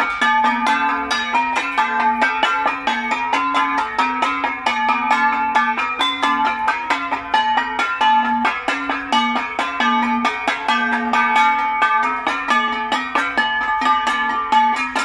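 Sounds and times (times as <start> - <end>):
flat gongs beaten in fast rhythm: 0.0 - 15.0.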